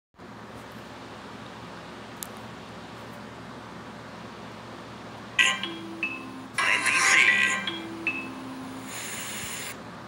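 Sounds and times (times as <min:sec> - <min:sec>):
loud held tones: 0:05.4 - 0:09.7
videotape hiss: 0:08.6 - 0:09.9.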